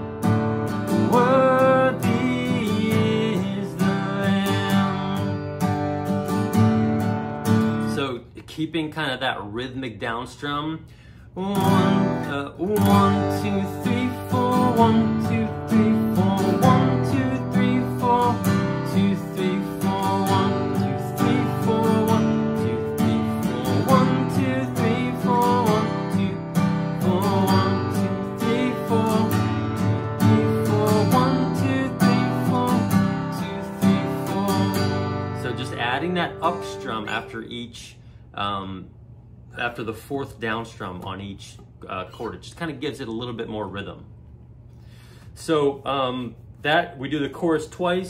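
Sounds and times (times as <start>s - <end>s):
acoustic guitar strumming: 0.0s - 8.2s, 11.4s - 37.8s.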